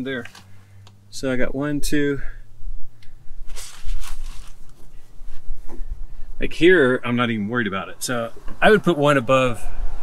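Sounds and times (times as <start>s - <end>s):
rustling and soft bumps: 3.4s - 9.0s.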